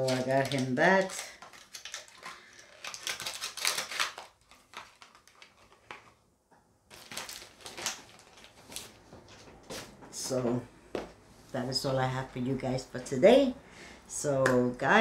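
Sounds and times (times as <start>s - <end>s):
items rustling and clattering on table: 0.0s - 6.2s, 6.9s - 11.2s.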